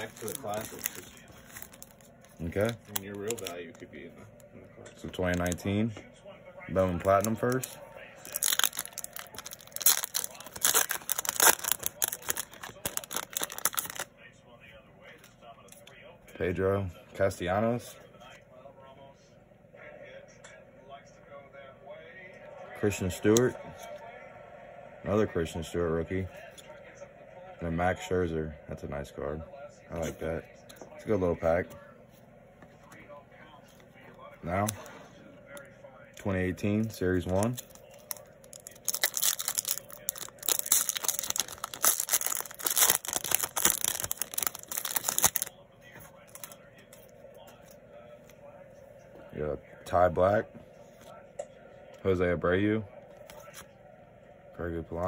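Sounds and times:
foil wrapper tearing and crinkling: 0.0s - 3.6s, 6.8s - 14.1s, 37.3s - 45.6s, 46.2s - 46.6s
handling trading cards: 0.0s - 5.9s, 6.7s - 14.1s, 36.2s - 48.4s.

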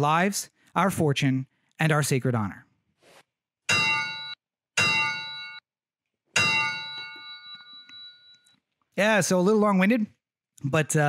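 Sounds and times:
bell-like metallic hits: 3.7s - 5.6s, 6.3s - 8.4s.

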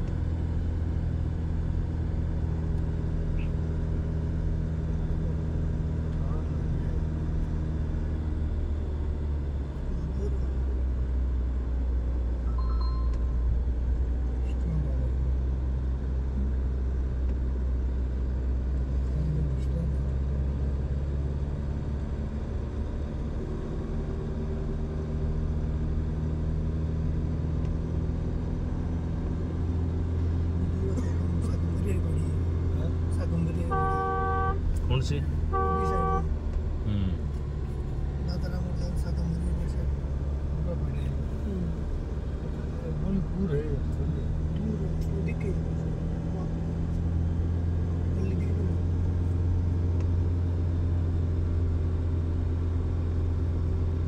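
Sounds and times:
car engine running: 0.0s - 54.0s
road noise: 0.0s - 54.0s.

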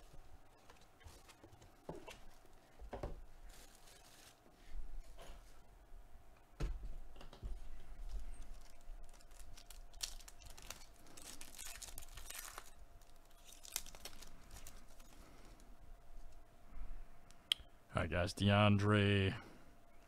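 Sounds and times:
foil wrapper tearing and crinkling: 3.5s - 4.4s, 8.4s - 15.6s.

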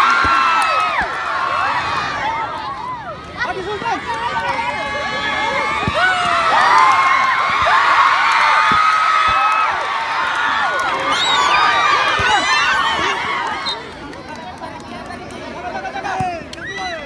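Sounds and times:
crowd shouting and cheering: 0.0s - 17.0s.

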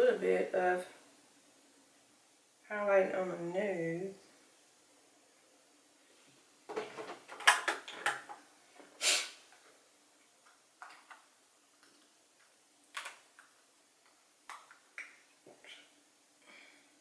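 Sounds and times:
short hiss: 8.9s - 9.5s.

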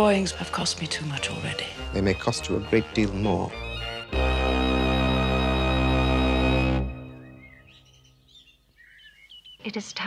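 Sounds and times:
songbird chirps: 0.0s - 10.0s
music chord: 1.0s - 7.7s.

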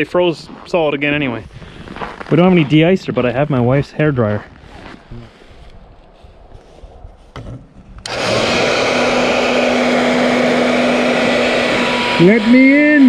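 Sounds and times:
hair dryer running: 8.0s - 13.0s.

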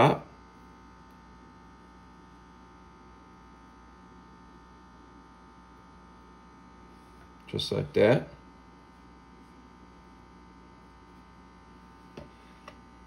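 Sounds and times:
faint electrical hum: 0.0s - 13.0s.

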